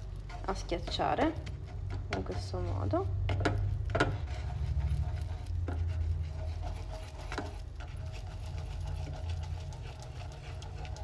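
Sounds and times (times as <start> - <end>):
spatula scraping sugar in pan: 0.0 - 11.0.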